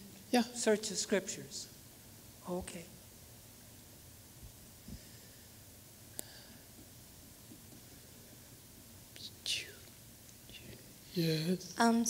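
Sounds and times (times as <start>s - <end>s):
person whispering: 9.2s - 11.6s.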